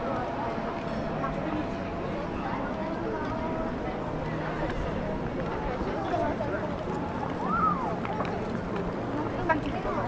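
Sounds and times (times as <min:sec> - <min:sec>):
passers-by talking: 0:00.0 - 0:10.0.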